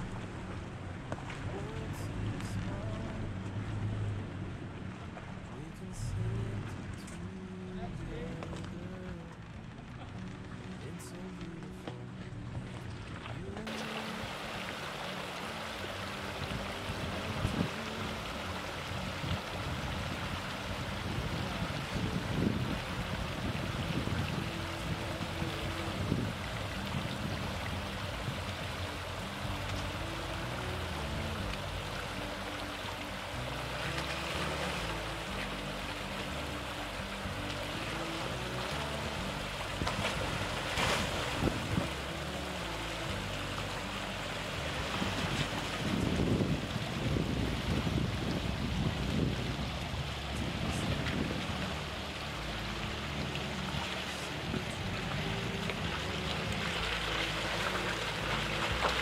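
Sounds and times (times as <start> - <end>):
creek rushing over rocks: 0.0 - 59.0
tyres splashing through water: 0.0 - 59.0.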